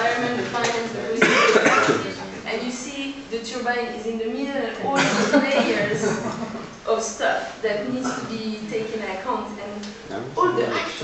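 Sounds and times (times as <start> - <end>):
people talking: 0.0 - 11.0
person coughing: 1.2 - 2.1.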